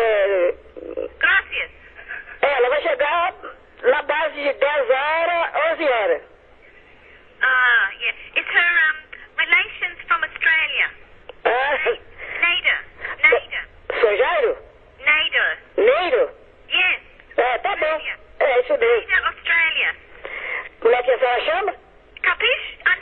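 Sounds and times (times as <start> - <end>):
voices talking over telephone: 0.0 - 23.0.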